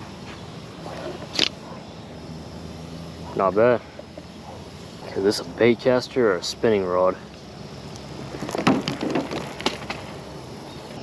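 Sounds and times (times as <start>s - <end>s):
steady outdoor hiss: 0.0s - 11.0s.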